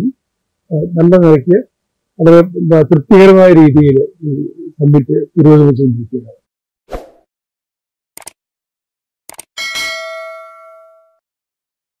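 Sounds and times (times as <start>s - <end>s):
bell-like notification ding: 9.6s - 11.2s.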